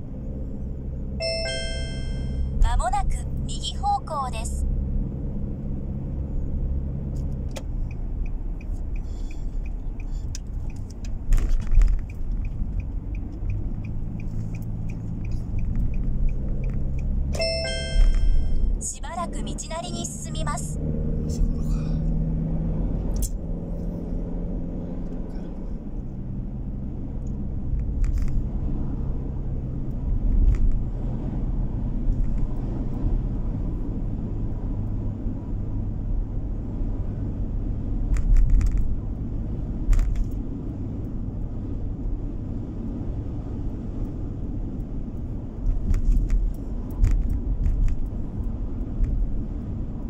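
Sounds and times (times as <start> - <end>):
engine and road rumble in car: 0.0 - 50.0
navigation unit chime: 1.2 - 3.1, 17.4 - 18.8
synthesized voice prompt: 1.2 - 4.6, 18.8 - 20.8
turn signal ticking: 7.1 - 20.6, 38.2 - 50.0.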